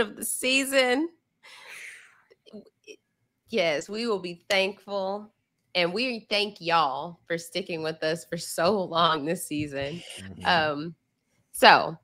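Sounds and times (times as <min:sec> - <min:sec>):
faint short vocal sounds: 0:09.8 - 0:10.6.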